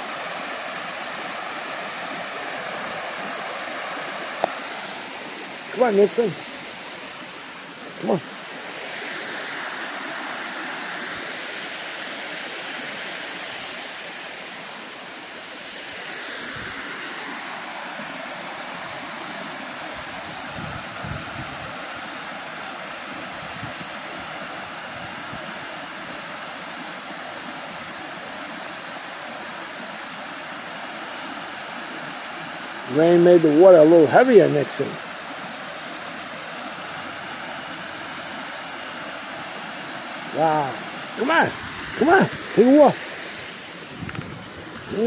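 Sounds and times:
water running through rapids: 0:00.0 - 0:45.0
water rushing over spillway: 0:00.0 - 0:45.0.

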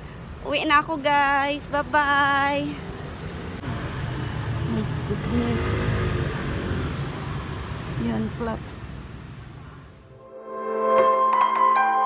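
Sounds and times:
road traffic rumble: 0:00.0 - 0:10.2.

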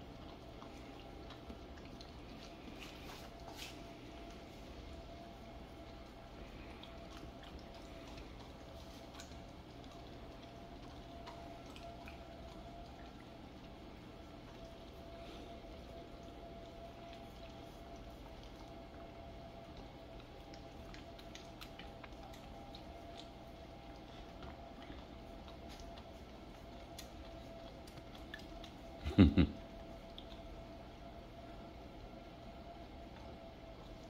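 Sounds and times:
dogs licking: 0:00.0 - 0:34.0
faint steady hum: 0:00.0 - 0:34.0.

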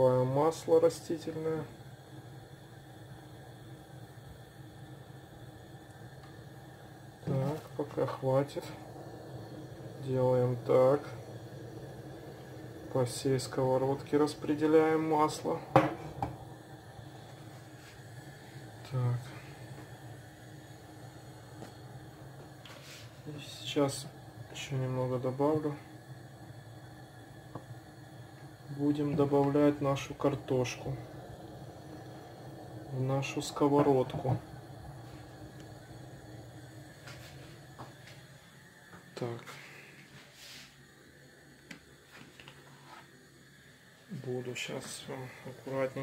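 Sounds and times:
gas hob burner hissing: 0:00.0 - 0:46.0.

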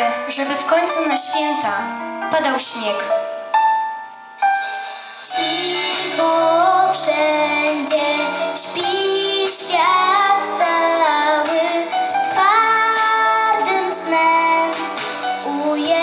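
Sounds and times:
girl singing into a microphone: 0:05.3 - 0:16.0.

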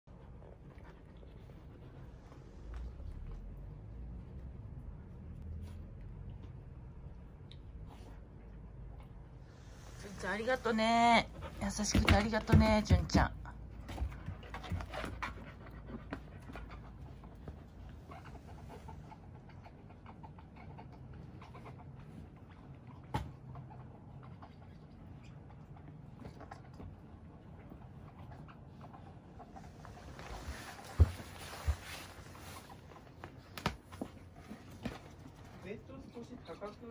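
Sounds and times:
dogs mouthing and breathing: 0:00.1 - 0:36.9.

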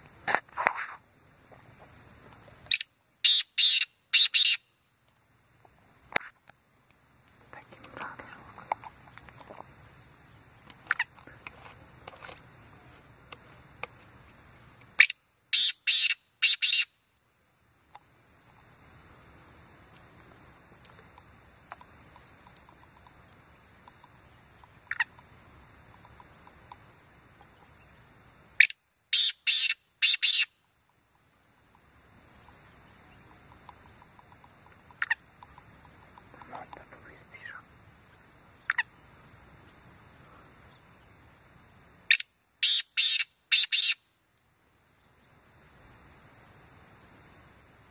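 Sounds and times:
bird chirps: 0:02.6 - 0:04.7, 0:15.0 - 0:17.0, 0:22.1 - 0:25.2, 0:28.6 - 0:30.7, 0:32.3 - 0:36.3, 0:38.6 - 0:39.0, 0:42.1 - 0:44.1
bird harsh grating call: 0:02.7 - 0:04.6, 0:15.6 - 0:16.9, 0:29.2 - 0:30.5, 0:42.1 - 0:44.0.

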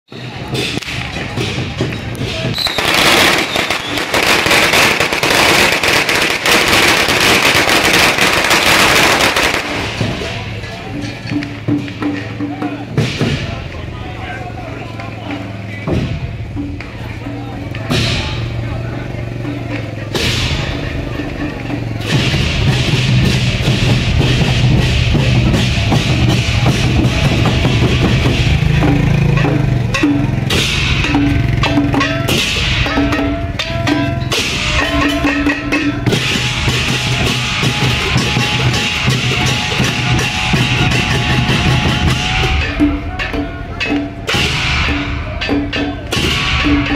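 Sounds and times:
drums beaten with sticks: 0:00.1 - 0:46.9
firecrackers banging: 0:00.1 - 0:46.9
hand cymbals clashing: 0:00.1 - 0:46.9
cymbal crash: 0:22.0 - 0:43.2, 0:44.3 - 0:46.9.

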